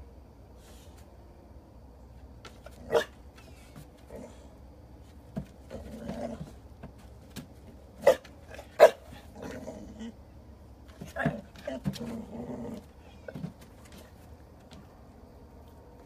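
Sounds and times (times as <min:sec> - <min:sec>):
dog barking: 0:02.8 - 0:03.2, 0:08.0 - 0:09.1.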